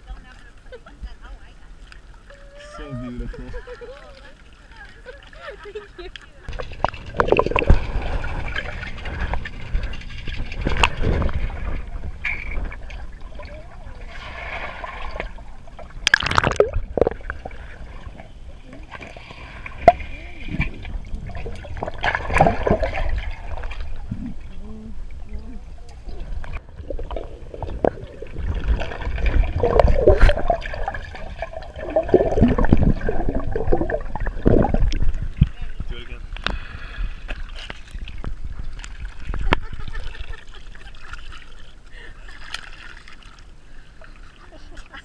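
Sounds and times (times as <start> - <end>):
water sloshing and splashing: 0.0 - 45.0
muffled underwater rumble: 6.3 - 40.8.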